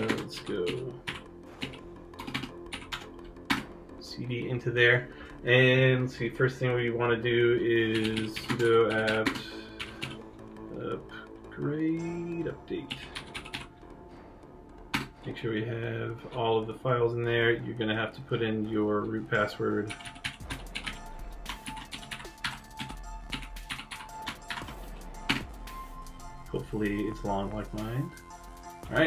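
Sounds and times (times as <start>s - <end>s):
computer keyboard typing: 0.0s - 3.7s, 7.8s - 10.3s, 12.8s - 13.7s, 14.9s - 15.2s, 19.3s - 25.8s.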